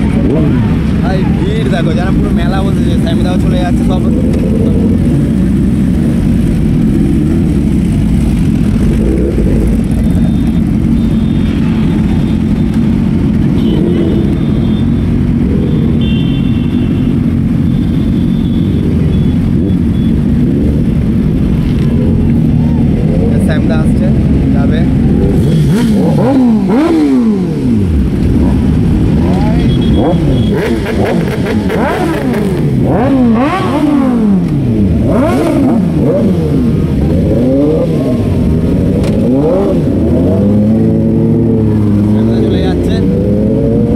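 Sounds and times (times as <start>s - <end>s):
motorcycle engines revving: 0.0s - 43.9s.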